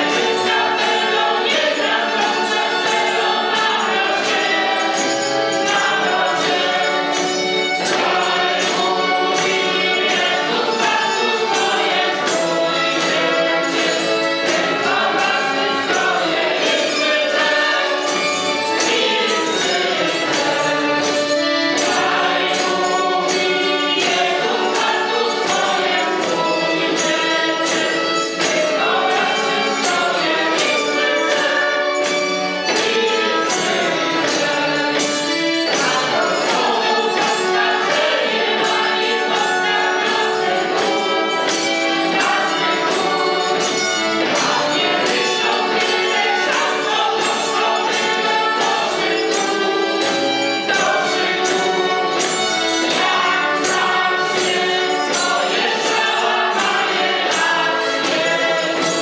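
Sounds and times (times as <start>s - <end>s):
accordion: 0.0s - 59.0s
choir singing: 0.0s - 59.0s
tambourine beat: 0.0s - 59.0s
violin: 0.0s - 59.0s.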